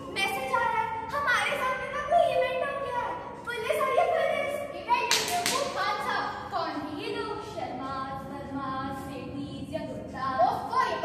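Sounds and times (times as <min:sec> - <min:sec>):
young voices delivering lines: 0:00.0 - 0:11.0
sharp clap-like smack: 0:05.1 - 0:05.8.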